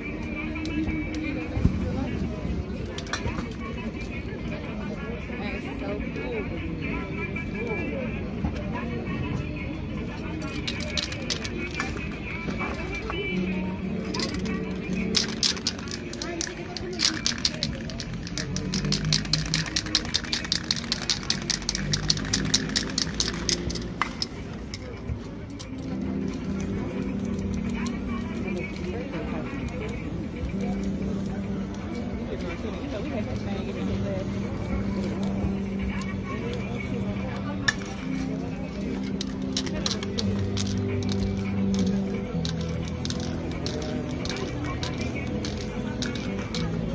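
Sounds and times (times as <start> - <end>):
spray can short strokes: 14.2 - 24.4.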